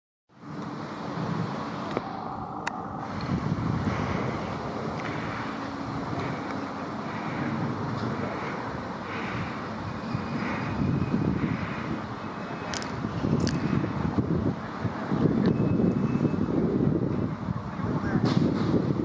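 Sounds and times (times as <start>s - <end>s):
wind buffeting microphone: 0.4s - 19.0s.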